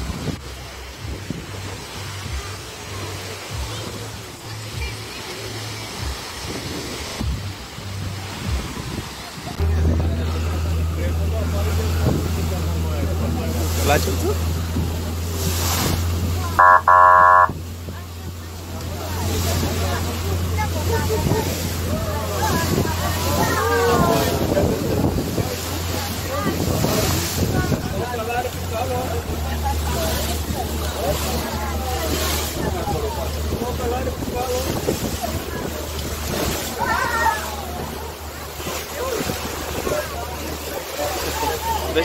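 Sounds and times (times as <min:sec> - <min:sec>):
boat engine droning: 0:00.0 - 0:42.0
small waves lapping: 0:00.0 - 0:42.0
water rushing past hull: 0:00.0 - 0:42.0
voices: 0:09.2 - 0:42.0
loud even tone: 0:16.6 - 0:17.6.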